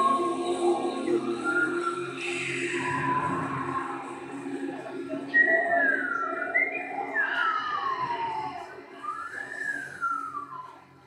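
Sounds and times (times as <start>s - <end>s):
low looped drone: 0.0s - 11.0s
sliding whistle-like tones: 0.0s - 11.0s.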